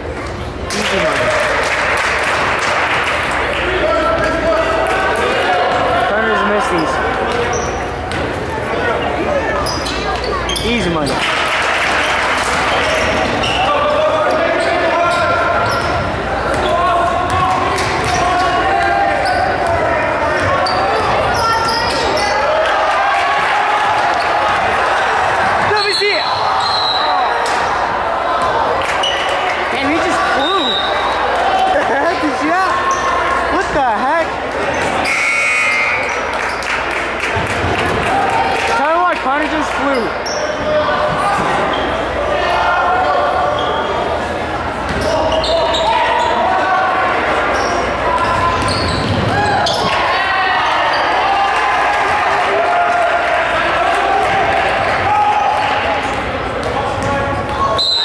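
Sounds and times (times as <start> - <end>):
spectator chatter: 0.0 - 58.0
knocks and squeaks on floor: 9.6 - 10.8, 47.6 - 50.0.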